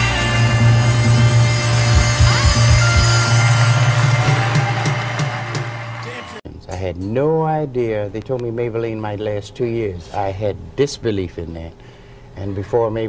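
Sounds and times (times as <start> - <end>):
bass guitar: 0.0 - 5.9
drums: 0.0 - 6.4.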